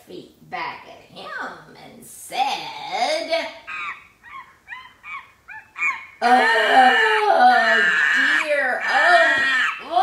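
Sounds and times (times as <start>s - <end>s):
person making monkey-like chatter: 3.6s - 10.0s.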